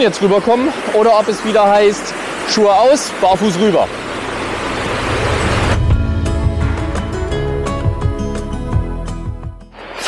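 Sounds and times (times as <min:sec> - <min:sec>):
rushing stream water: 0:00.0 - 0:06.0
soft instrumental music: 0:05.8 - 0:09.9.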